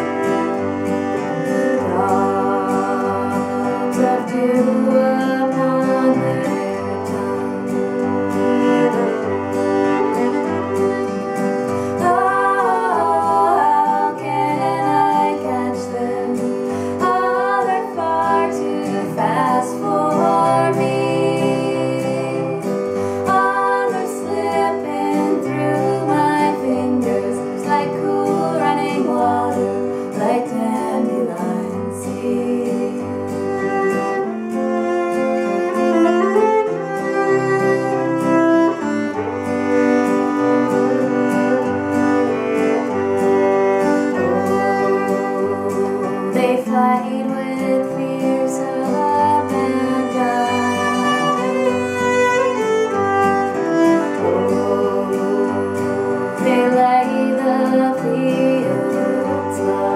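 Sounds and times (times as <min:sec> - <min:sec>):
woman singing: 0:00.0 - 0:38.8, 0:41.3 - 0:59.9
acoustic guitar playing: 0:00.0 - 0:59.9
fiddle playing: 0:00.0 - 0:59.9.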